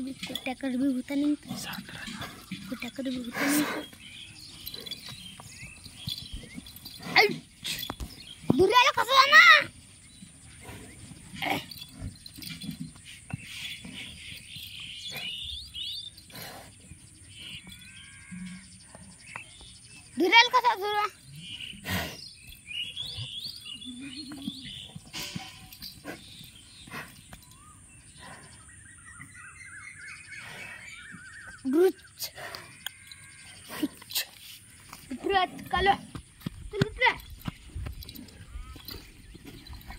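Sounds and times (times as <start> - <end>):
small bird chirping: 0.0 - 39.9
water buffalo snort: 1.4 - 8.3, 10.4 - 17.6, 21.4 - 22.4, 24.7 - 27.5.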